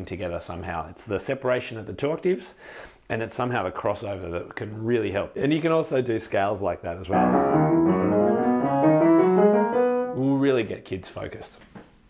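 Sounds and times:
upright piano playing a scale: 0:07.1 - 0:10.4.

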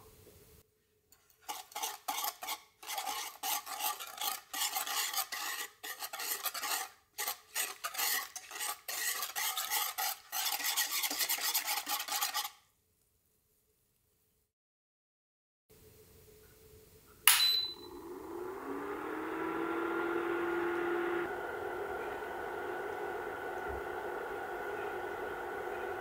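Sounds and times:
whisk scraping pan: 0:01.2 - 0:12.6.

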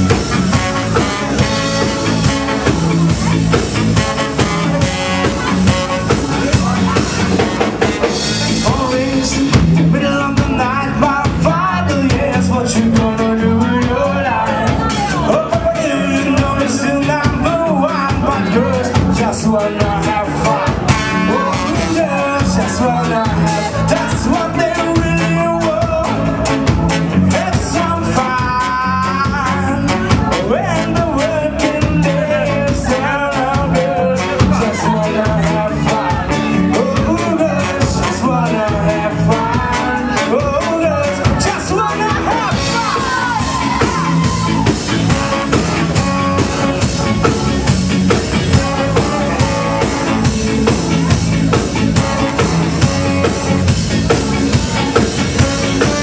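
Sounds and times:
saxophone: 0:00.0 - 0:08.7, 0:20.3 - 0:27.5, 0:42.4 - 0:56.0
trumpet: 0:00.0 - 0:09.2, 0:19.6 - 0:56.0
bass: 0:00.0 - 0:56.0
drum beat: 0:00.0 - 0:56.0
electric guitar: 0:00.0 - 0:56.0
ska band playing: 0:00.0 - 0:56.0.

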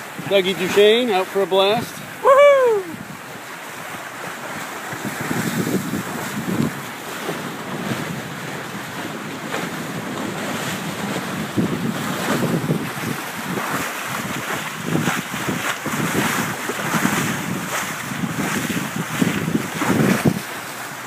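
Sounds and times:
water rushing and splashing: 0:00.0 - 0:21.0
wind on microphone: 0:00.0 - 0:21.0.

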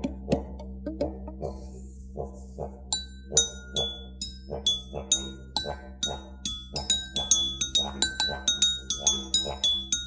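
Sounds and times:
didgeridoo drone pulsing: 0:00.0 - 0:10.0
water glasses ringing: 0:03.0 - 0:10.0.

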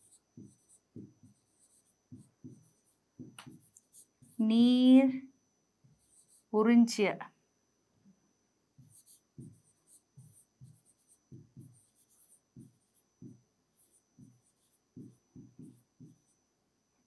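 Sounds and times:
pen tapping on display board: 0:00.4 - 0:01.3, 0:02.1 - 0:03.8, 0:10.2 - 0:11.9, 0:15.0 - 0:16.3.

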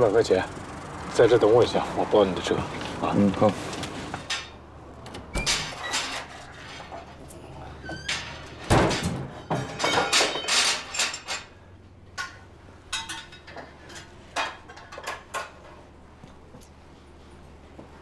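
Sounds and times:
knocks and clatters: 0:08.0 - 0:11.5.

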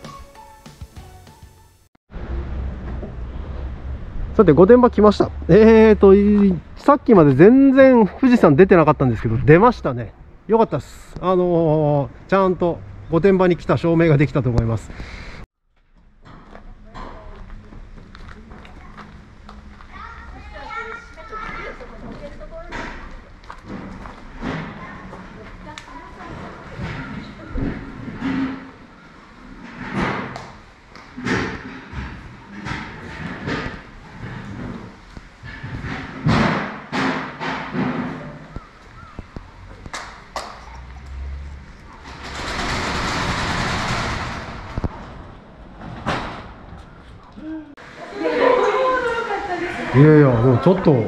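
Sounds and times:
knocks and thuds: 0:29.7 - 0:40.0.

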